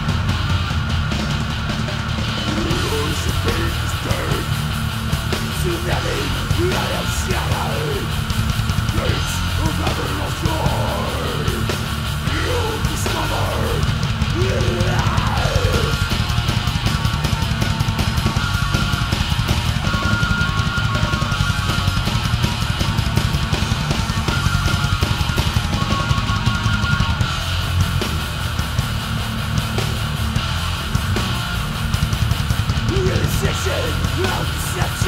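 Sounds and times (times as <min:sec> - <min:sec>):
distorted electric guitars: 0:00.0 - 0:35.0
fast dense drumming: 0:00.0 - 0:35.0.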